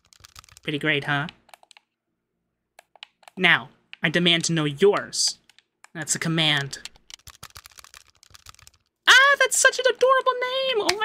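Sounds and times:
computer keyboard keys clicking: 0.0 - 0.7, 1.5 - 1.9, 2.8 - 3.4, 6.8 - 8.9.

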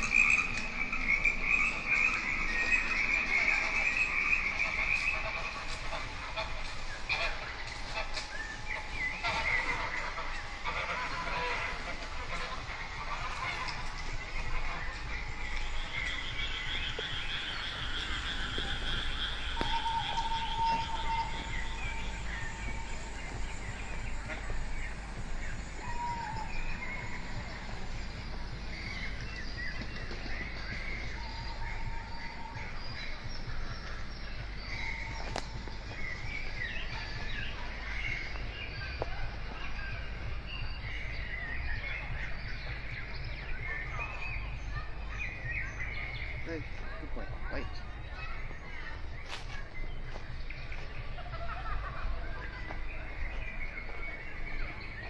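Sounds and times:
bird chirps and calls: 0.0 - 55.0
steady low rumble: 0.0 - 55.0.

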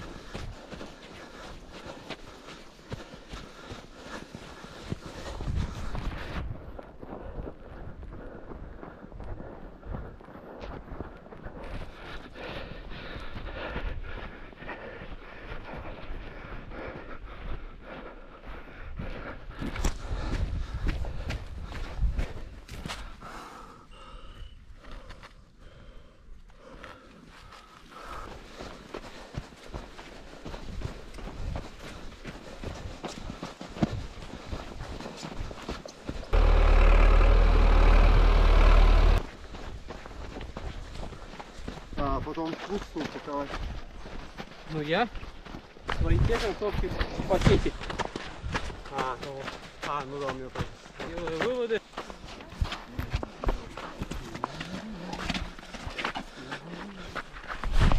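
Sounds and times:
loud low rumble: 36.4 - 39.2.

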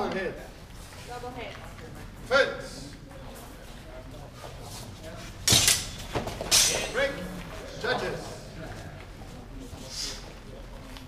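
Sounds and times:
training swords clashing: 5.4 - 7.3.

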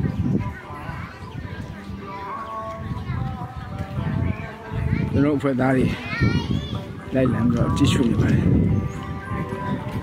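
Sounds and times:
people talking: 0.0 - 8.5
faint background music: 0.0 - 10.0
child's high-pitched voice: 6.0 - 6.9.

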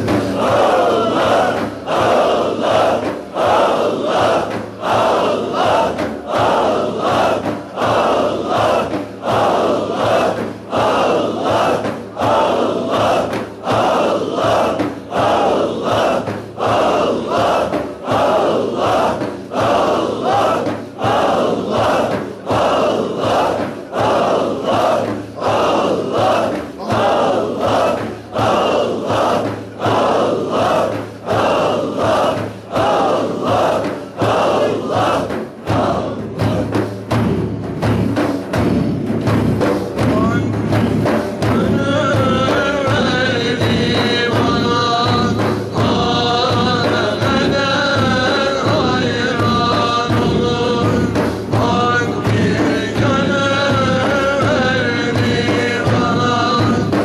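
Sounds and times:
group chanting in unison: 0.0 - 57.0.

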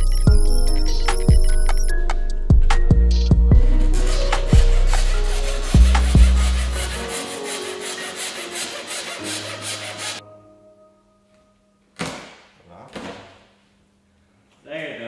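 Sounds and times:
background music: 0.0 - 12.4
wire sawing through glass adhesive: 3.6 - 10.2.

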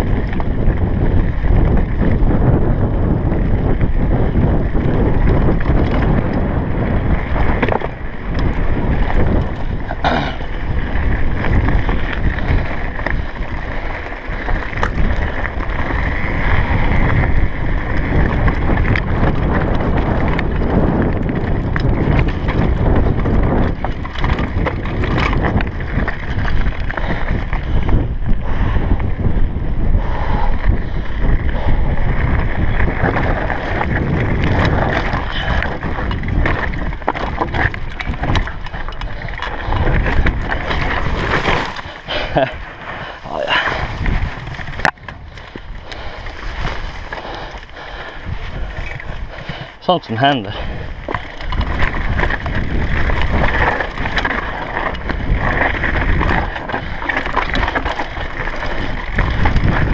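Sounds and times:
mountain bike rattling: 0.0 - 59.9
wind buffeting microphone: 0.0 - 59.9
tyres crunching on gravel: 32.6 - 59.9.

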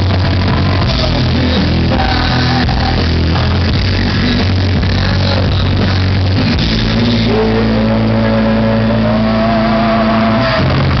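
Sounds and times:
distorted rock band music: 0.0 - 11.0.

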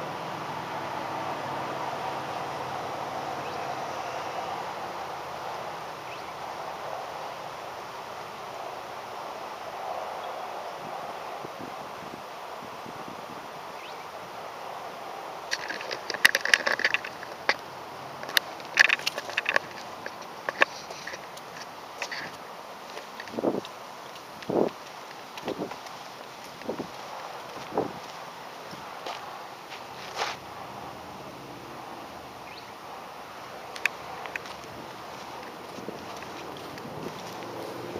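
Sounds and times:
distant street traffic hum: 0.0 - 37.9
camera handling clicks and knocks: 18.2 - 22.2
footsteps on concrete: 18.5 - 30.4, 34.4 - 37.9.

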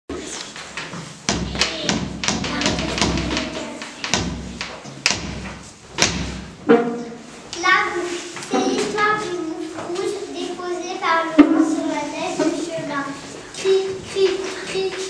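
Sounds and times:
knocks and thumps: 0.1 - 7.2
children's voices: 1.3 - 4.2, 7.0 - 15.0.

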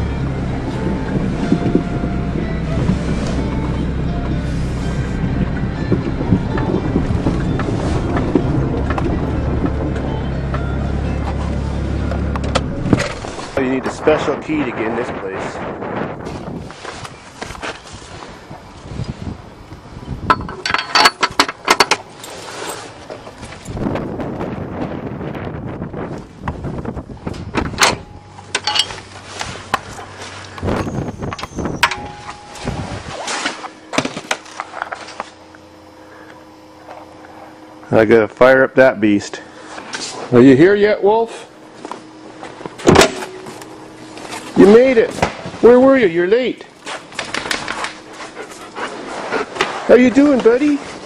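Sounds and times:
steel door opening: 27.4 - 29.1
dog panting: 48.1 - 49.8.

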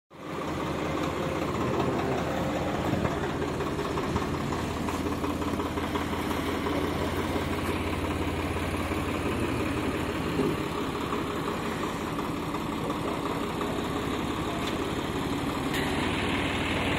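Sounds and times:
tractor diesel engine idling: 0.1 - 16.9.

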